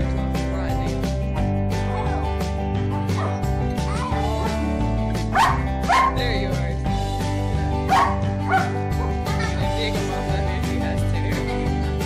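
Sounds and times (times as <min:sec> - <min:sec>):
background music: 0:00.0 - 0:12.0
dog crying and yelping: 0:03.1 - 0:03.4, 0:07.9 - 0:09.3.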